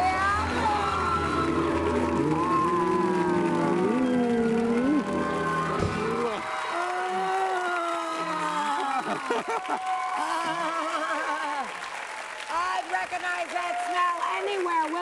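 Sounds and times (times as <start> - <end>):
audience applauding and cheering: 0.0 - 15.0
live band playing: 0.1 - 6.4
excited voices: 0.1 - 11.8.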